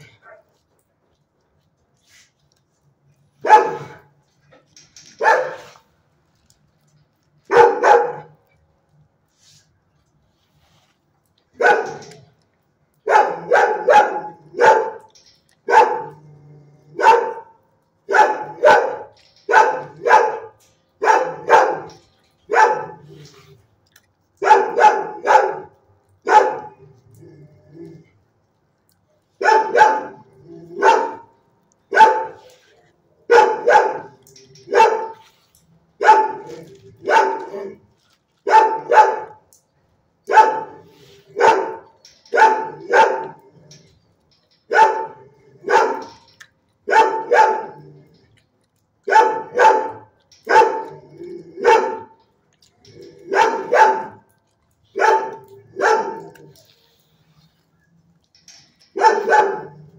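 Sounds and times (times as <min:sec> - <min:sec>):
dog barking: 0:03.4 - 0:04.1, 0:05.2 - 0:05.8, 0:07.5 - 0:08.4, 0:11.6 - 0:12.1, 0:13.1 - 0:15.1, 0:15.7 - 0:16.2, 0:17.0 - 0:21.9, 0:22.5 - 0:23.0, 0:24.4 - 0:26.8, 0:29.4 - 0:30.2, 0:30.8 - 0:31.3, 0:31.9 - 0:32.5, 0:33.3 - 0:35.2, 0:36.0 - 0:37.8, 0:38.5 - 0:39.4, 0:40.3 - 0:43.4, 0:44.7 - 0:46.2, 0:46.9 - 0:47.8, 0:49.1 - 0:50.9, 0:51.6 - 0:52.2, 0:53.3 - 0:54.2, 0:55.0 - 0:56.6, 0:59.0 - 0:59.9.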